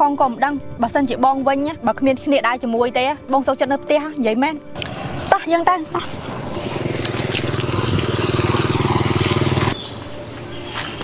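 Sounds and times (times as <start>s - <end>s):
small engine running: 4.8s - 9.9s.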